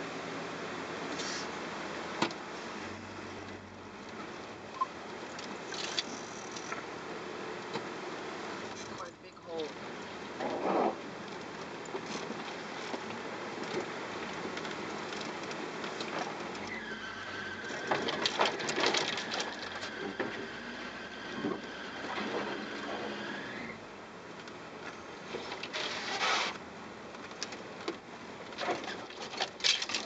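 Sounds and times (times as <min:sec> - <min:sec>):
vehicle cabin rumble: 0:00.0 - 0:30.0.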